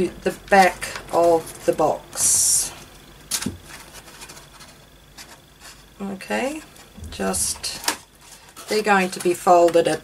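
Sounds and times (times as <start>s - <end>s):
cardstock rustling and scraping: 3.3s - 5.9s.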